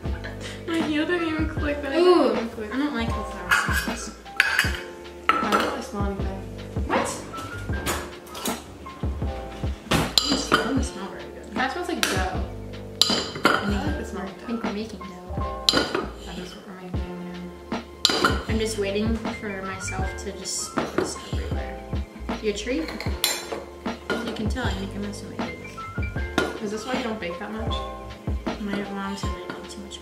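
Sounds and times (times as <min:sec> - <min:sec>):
background music: 0:00.0 - 0:30.0
utensils clinking against mixing bowl: 0:03.4 - 0:06.0, 0:07.0 - 0:08.7, 0:10.0 - 0:11.0, 0:13.0 - 0:14.0, 0:15.6 - 0:16.6, 0:18.0 - 0:18.6, 0:22.7 - 0:24.8.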